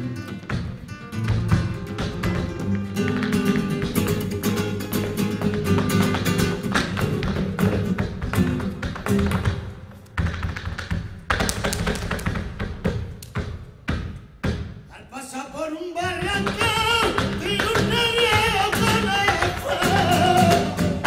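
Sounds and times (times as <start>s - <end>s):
flamenco guitar playing: 0.0s - 13.9s, 16.0s - 21.0s
dance footwork striking stage floor: 0.0s - 14.9s, 16.0s - 21.0s.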